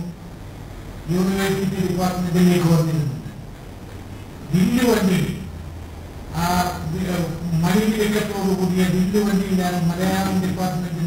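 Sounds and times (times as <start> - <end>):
man lecturing into microphone: 0.0 - 0.2, 1.0 - 3.5, 4.5 - 5.6, 6.3 - 11.0
steady low hum: 0.0 - 11.0.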